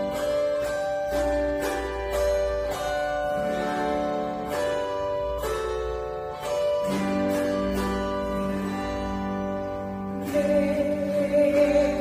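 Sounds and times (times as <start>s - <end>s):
zither strummed chords: 0.0s - 12.0s.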